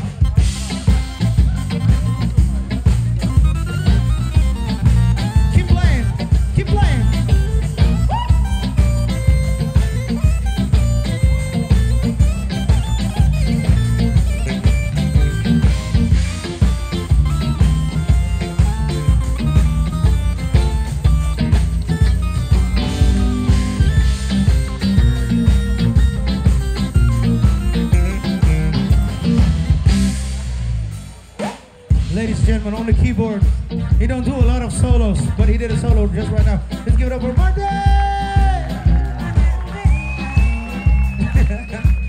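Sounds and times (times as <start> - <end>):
bass groove: 0.0 - 42.0
drums: 0.0 - 42.0
keyboard solo: 0.0 - 42.0.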